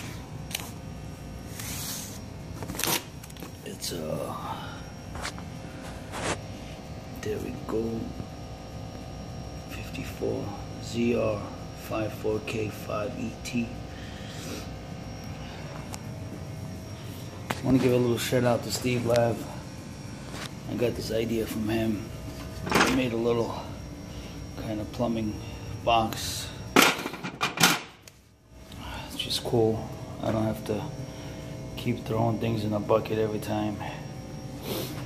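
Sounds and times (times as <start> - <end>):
air conditioner humming: 0.0 - 35.0.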